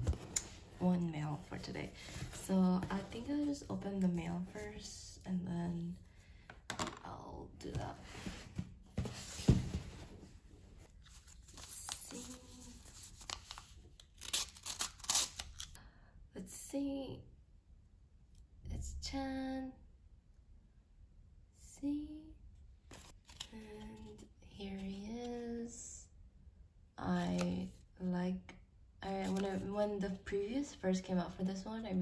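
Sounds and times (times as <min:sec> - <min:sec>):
paper envelope rustling: 0:11.0 - 0:15.7, 0:29.2 - 0:29.7.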